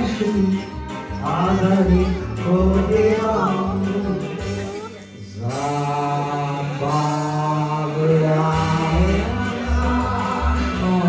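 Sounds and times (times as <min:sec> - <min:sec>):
amplified backing track: 0:00.0 - 0:11.0
low bass notes: 0:00.0 - 0:11.0
man singing long notes: 0:00.0 - 0:11.0.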